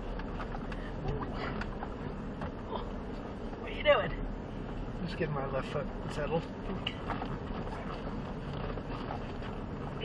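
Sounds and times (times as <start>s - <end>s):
engine and tyres on gravel rumble: 0.0s - 10.0s.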